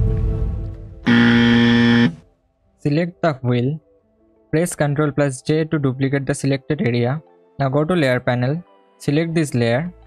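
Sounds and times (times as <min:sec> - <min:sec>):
wrong answer buzzer: 0:01.1 - 0:02.2.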